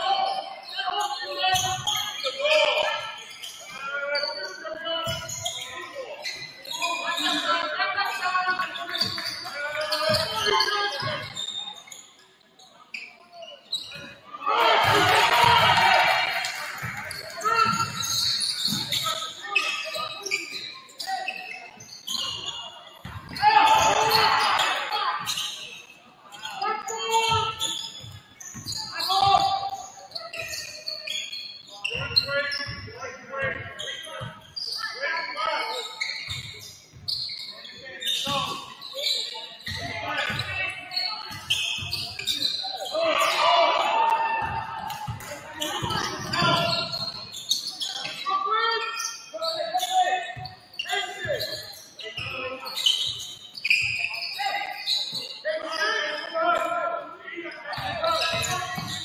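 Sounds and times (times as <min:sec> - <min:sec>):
players and spectators shouting: 0:14.3 - 0:20.1, 0:22.2 - 0:25.5, 0:39.7 - 0:47.1.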